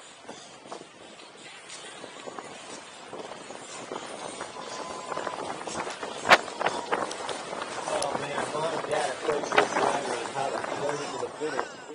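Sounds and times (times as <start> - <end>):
wind noise on microphone: 0.0 - 11.9
bike tyre rolling on dirt: 0.7 - 11.9.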